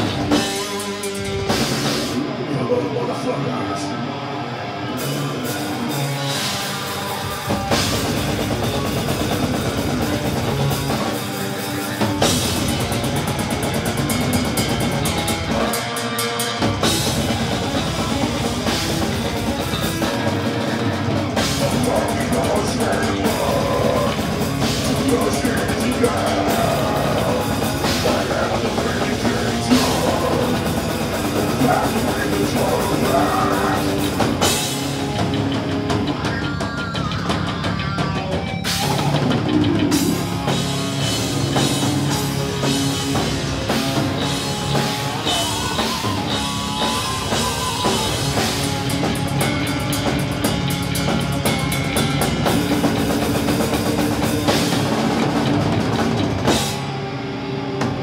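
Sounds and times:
death metal band playing live: 0:00.0 - 0:58.0.

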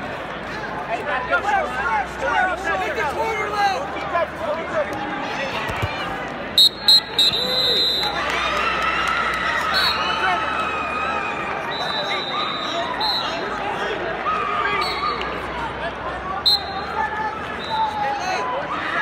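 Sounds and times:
crowd murmur: 0:00.0 - 0:19.0
referee's whistle blasts: 0:06.6 - 0:08.2, 0:11.7 - 0:13.4, 0:16.4 - 0:17.0, 0:17.6 - 0:18.0.

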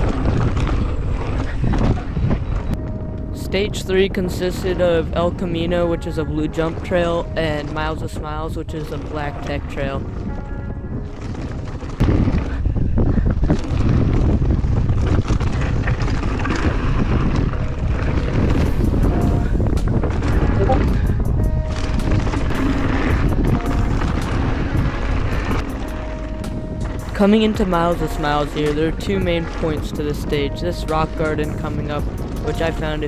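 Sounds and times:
tyres on loose dirt and gravel: 0:00.0 - 0:33.0
wind rushing over microphone: 0:00.0 - 0:33.0
background music: 0:02.8 - 0:11.3, 0:18.5 - 0:33.0.

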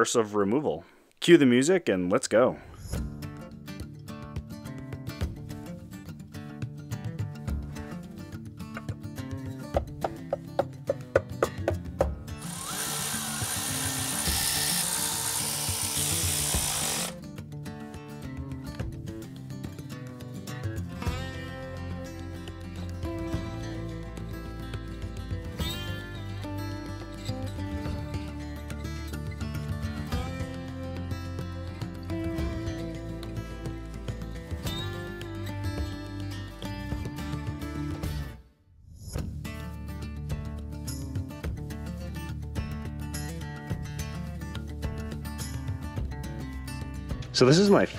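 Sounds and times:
background music: 0:02.7 - 0:47.9
power tool running: 0:12.4 - 0:17.2.

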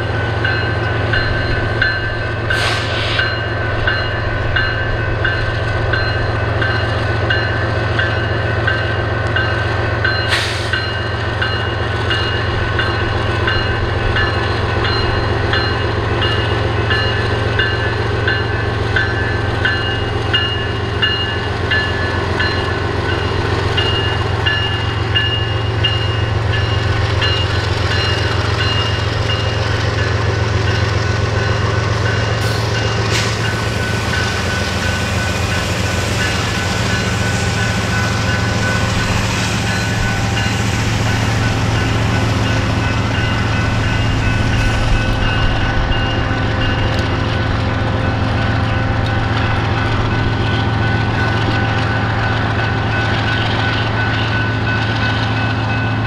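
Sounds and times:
diesel locomotive engines droning: 0:00.0 - 0:56.0.

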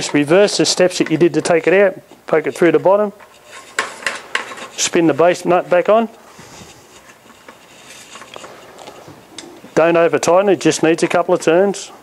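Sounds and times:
plastic nut scratchy rubbing: 0:02.4 - 0:05.6, 0:06.2 - 0:09.9.

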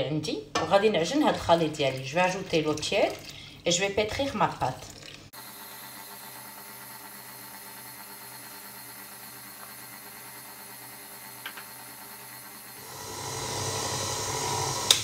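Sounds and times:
stand mixer motor humming: 0:05.4 - 0:15.0.

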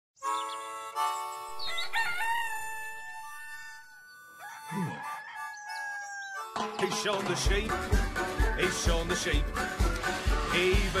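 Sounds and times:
cartoon rooster crowing: 0:01.6 - 0:06.6.

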